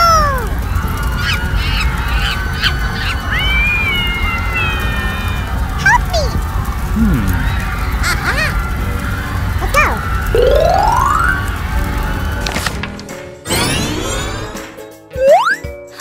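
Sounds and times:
background music: 8.6s - 16.0s
rising whistle glide: 10.0s - 11.8s
cartoon boing sounds: 10.4s - 11.4s, 15.2s - 15.6s.

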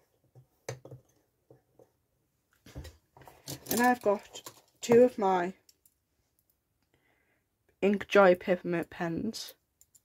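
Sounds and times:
pencils tapping on a table: 0.2s - 2.0s.

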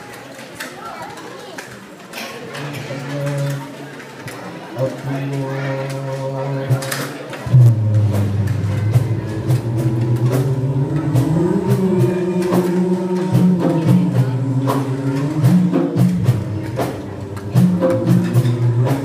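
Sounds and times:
sustained low notes: 7.4s - 19.0s
sharp percussive beat: 7.5s - 19.0s
boys singing a cappella: 9.0s - 17.0s.

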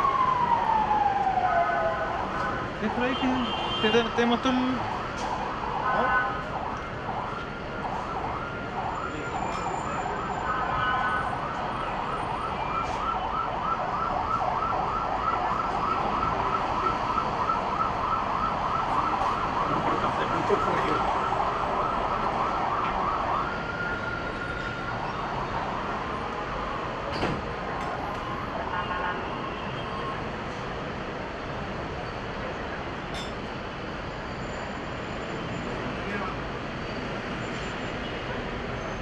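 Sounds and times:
emergency vehicle siren yelping: 0.0s - 32.5s.

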